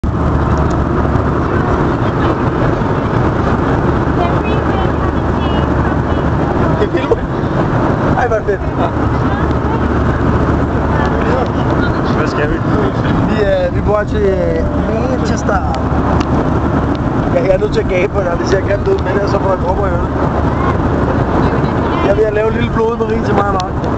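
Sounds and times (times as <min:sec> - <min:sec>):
airliner cabin roar: 0:00.0 - 0:23.9.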